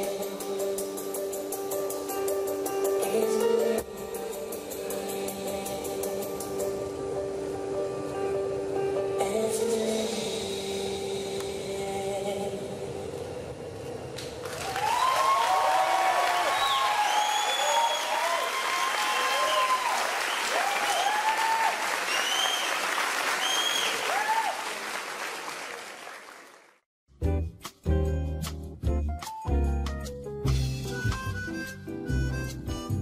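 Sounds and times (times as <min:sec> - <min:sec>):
audience applause: 0:14.4 - 0:26.8
whoops and cheers: 0:14.5 - 0:24.8.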